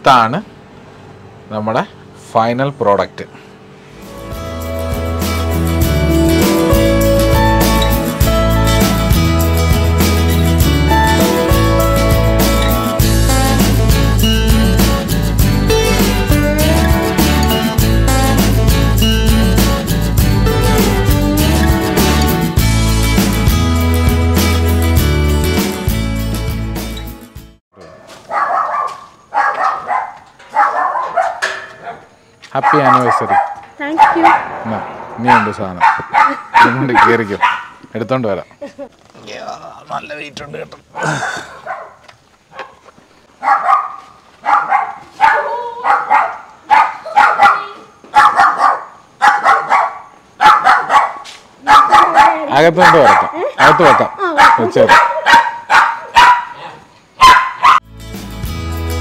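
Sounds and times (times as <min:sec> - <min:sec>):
dog barking: 0:27.9 - 0:34.5, 0:35.3 - 0:37.8, 0:41.0 - 0:42.8, 0:43.4 - 0:57.8
short sharp sound: 0:34.1 - 0:36.2.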